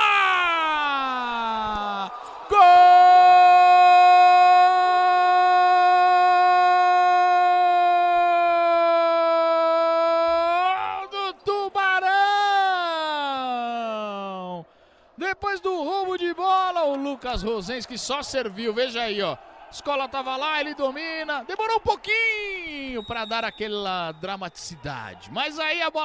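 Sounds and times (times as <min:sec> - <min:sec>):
commentator shouting goal cry: 0:00.0 - 0:14.6, 0:15.2 - 0:26.0.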